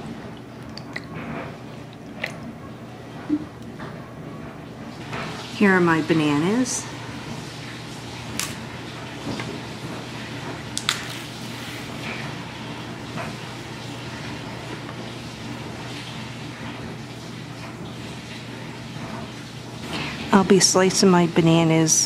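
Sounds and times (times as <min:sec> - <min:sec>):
low room hum: 0:00.0 - 0:22.0.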